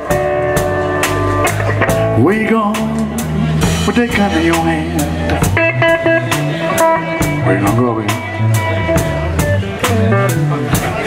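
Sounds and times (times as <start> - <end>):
drums with cymbal strokes: 0.0 - 11.0
electric guitar fill: 0.0 - 11.0
person singing: 2.0 - 9.4.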